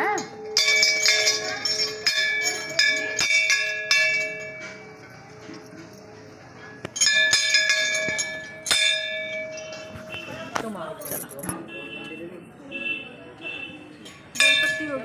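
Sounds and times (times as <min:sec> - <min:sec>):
large brass bell ringing: 0:00.2 - 0:05.1, 0:06.9 - 0:10.5.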